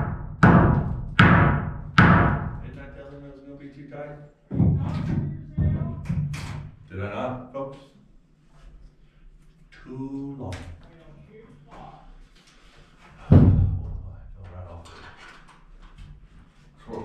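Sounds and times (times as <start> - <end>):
hammer striking nails into wood: 0.0 - 2.6
lumber knocking: 0.0 - 2.6, 4.5 - 6.4.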